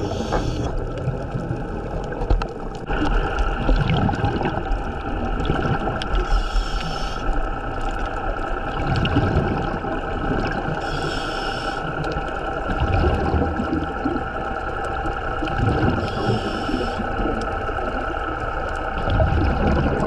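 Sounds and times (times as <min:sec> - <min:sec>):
regulator exhale bubbles: 0:00.0 - 0:02.2, 0:02.8 - 0:18.3, 0:18.9 - 0:20.0
boat engine hum underwater: 0:00.0 - 0:20.0.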